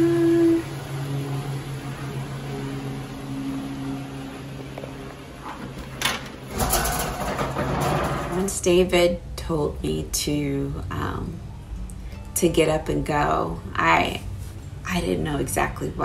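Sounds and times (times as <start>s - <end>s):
minivan engine low hum: 0.0s - 6.4s.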